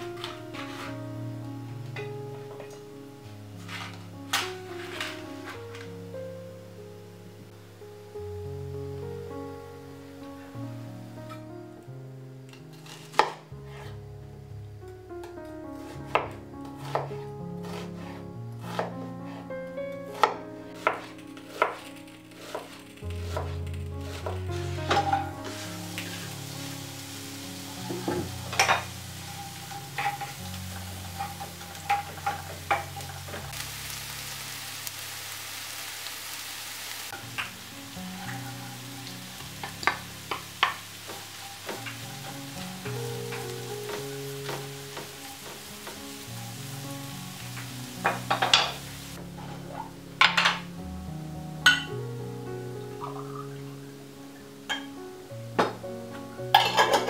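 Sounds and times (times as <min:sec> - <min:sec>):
onion sizzling in hot oil: 0:00.0 - 0:00.9, 0:03.4 - 0:05.7, 0:12.7 - 0:13.9, 0:15.8 - 0:19.5, 0:20.1 - 0:57.0
wooden spatula scraping pan: 0:00.0 - 0:01.1, 0:03.6 - 0:05.9, 0:12.6 - 0:14.0, 0:16.8 - 0:27.0, 0:27.6 - 0:33.6, 0:37.2 - 0:50.7
knife chopping on wooden board: 0:12.8 - 0:13.4, 0:16.1 - 0:19.0, 0:20.1 - 0:21.8.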